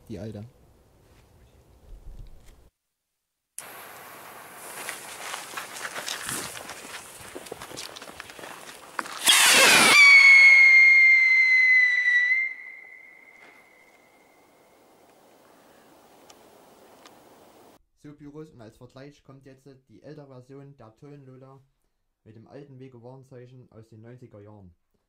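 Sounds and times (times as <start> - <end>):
fuse sizzling and crackling: 3.6 - 10.0
rocket launching whoosh: 9.1 - 13.8
shrill rocket whistle: 9.1 - 14.3.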